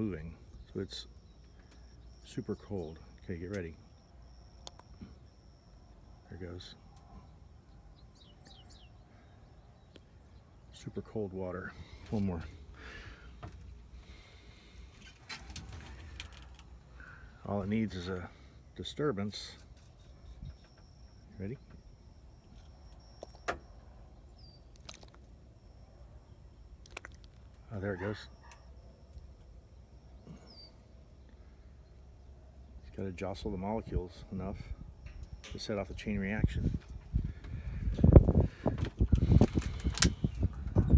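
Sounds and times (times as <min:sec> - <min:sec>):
wind buffeting microphone: 0:34.6 - 0:40.9.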